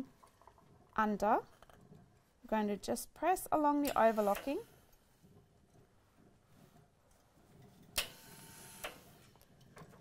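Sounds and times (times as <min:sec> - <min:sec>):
steam iron click: 0:03.8 - 0:04.5.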